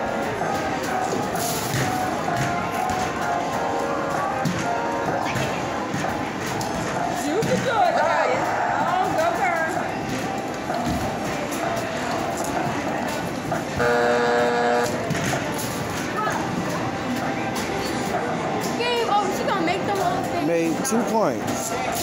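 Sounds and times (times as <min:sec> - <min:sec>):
arcade machine sounds: 0:00.0 - 0:18.7
arcade music: 0:13.6 - 0:15.1
electronic buzzer tone: 0:13.8 - 0:15.1.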